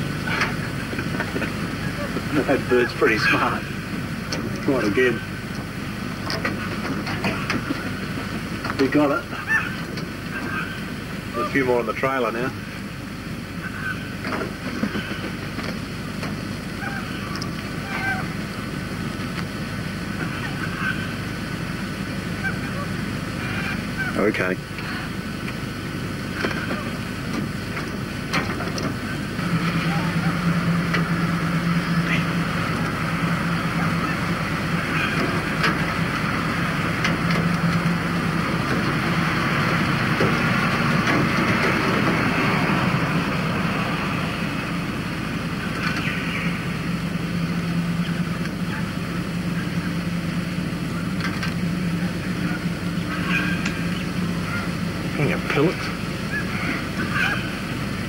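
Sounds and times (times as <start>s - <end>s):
vehicle engine idling: 0.0s - 58.0s.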